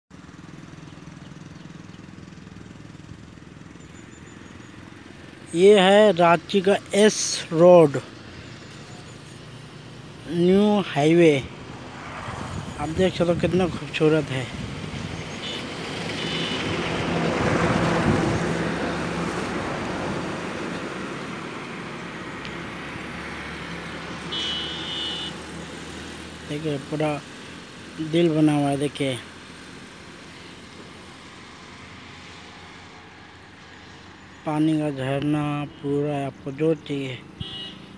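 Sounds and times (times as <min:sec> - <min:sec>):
steady traffic noise: 0:00.1 - 0:37.9
motorcycle engine running: 0:00.2 - 0:19.6
vehicle passing: 0:00.2 - 0:37.9.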